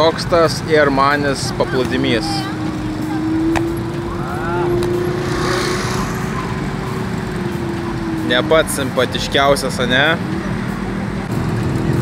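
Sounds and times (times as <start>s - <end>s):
quad bikes droning: 0.0s - 12.0s
wind: 0.0s - 12.0s.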